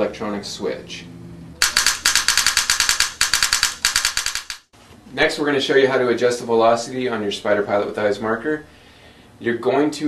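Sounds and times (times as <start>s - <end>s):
rapid mechanical clicks: 1.6s - 4.7s.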